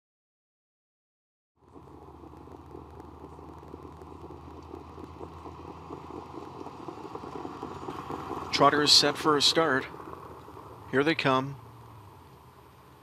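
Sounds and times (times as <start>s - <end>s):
faint crackle: 1.6s - 13.0s
low steady rumble: 1.6s - 13.0s.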